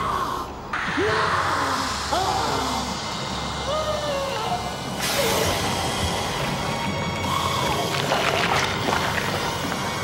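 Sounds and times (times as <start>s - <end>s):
eerie wailing cries: 0.0s - 8.1s.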